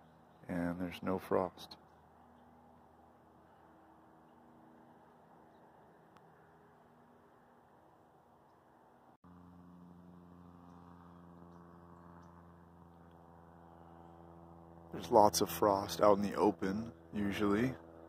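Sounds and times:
faint background hum: 0.0s - 18.0s.

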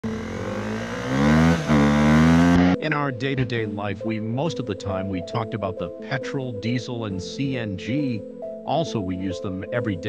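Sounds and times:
vehicle engine revving: 0.0s - 2.8s.

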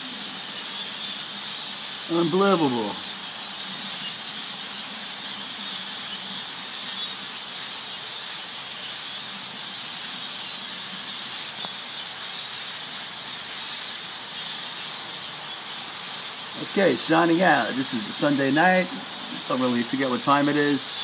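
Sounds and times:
flock of birds chirping: 0.0s - 21.0s.

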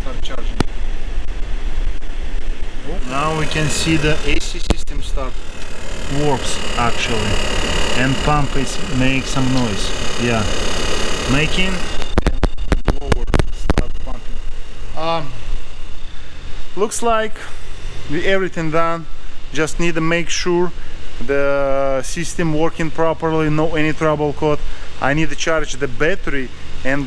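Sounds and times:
low rumble: 0.3s - 15.8s
car engine bay hum: 0.6s - 12.4s
sharp clicks: 7.6s - 13.9s.

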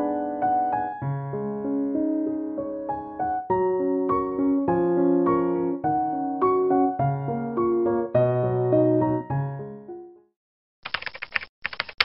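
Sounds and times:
piano tune: 0.0s - 10.4s
computer keyboard typing: 10.8s - 12.0s.

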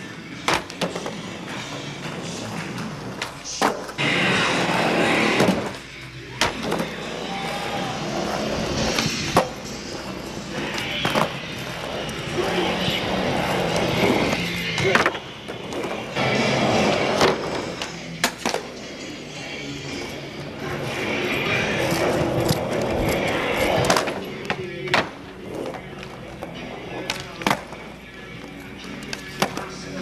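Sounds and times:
skateboard clacks: 0.0s - 18.9s, 20.6s - 30.0s
background music: 0.0s - 30.0s
skateboard wheels rolling on wood: 0.0s - 30.0s.

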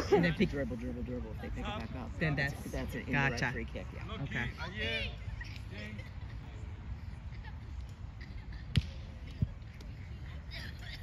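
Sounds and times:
faint distant voices: 0.0s - 11.0s
outdoor background noise: 0.0s - 11.0s.

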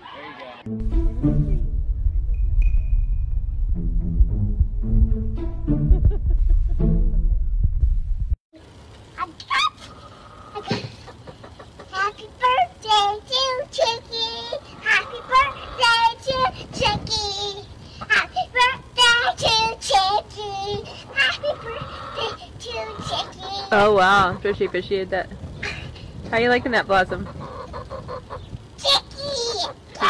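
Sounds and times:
girl singing high: 12.0s - 23.9s.

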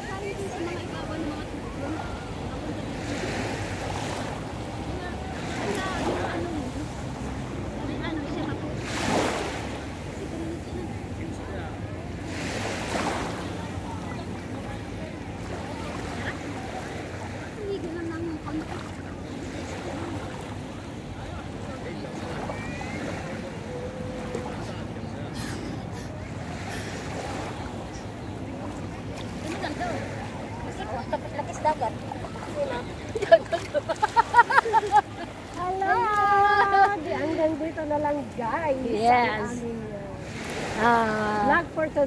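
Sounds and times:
faint voices: 0.0s - 42.0s
sea water washing at beach: 0.0s - 42.0s.

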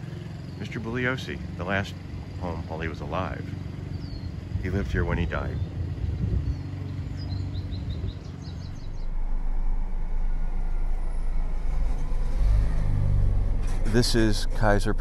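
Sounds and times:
small birds chirping: 0.0s - 9.4s
city street traffic: 0.0s - 15.0s
low hum: 0.0s - 15.0s
truck engine: 0.0s - 15.0s
wind on microphone: 4.4s - 6.7s.

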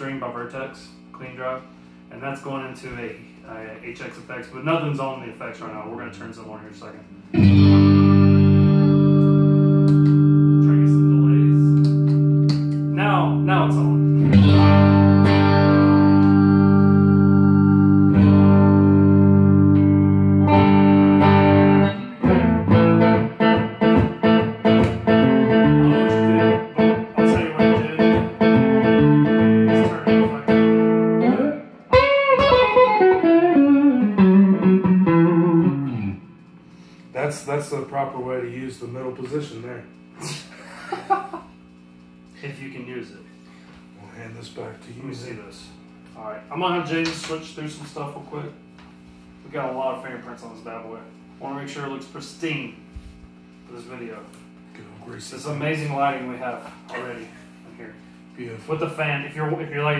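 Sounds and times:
quick picked guitar notes: 7.3s - 36.4s
bent sliding guitar notes: 7.3s - 36.9s
electric guitar chords strummed: 7.3s - 36.9s.

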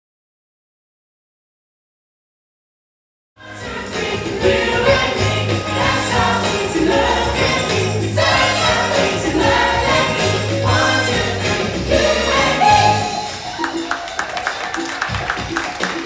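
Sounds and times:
backing music with bass line: 3.4s - 13.5s
jingling tambourine beat: 3.4s - 16.0s
men singing pop song: 3.5s - 13.3s.

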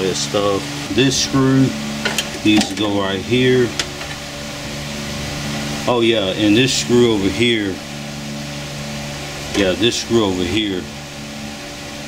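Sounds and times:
low mechanical hum with hiss: 0.0s - 12.0s.

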